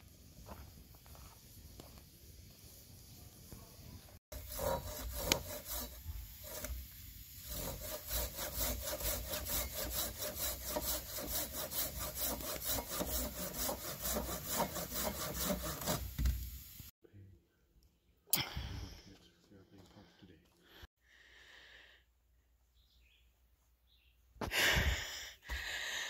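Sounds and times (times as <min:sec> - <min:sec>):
hand saw cutting wood: 0:04.3 - 0:16.2.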